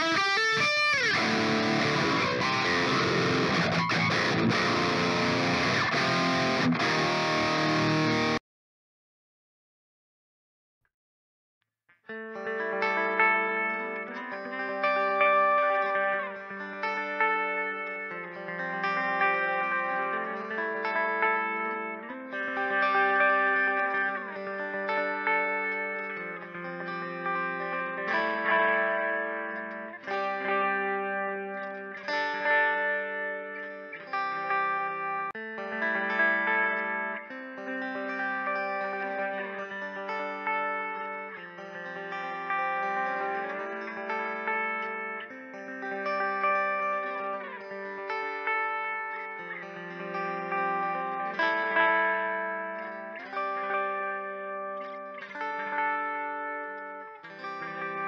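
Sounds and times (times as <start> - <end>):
electric guitar chords with effects: 0.0 - 8.4, 12.1 - 58.0.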